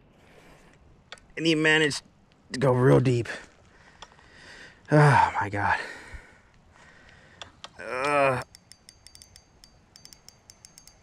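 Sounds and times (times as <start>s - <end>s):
fishing reel clicking: 8.4s - 11.0s.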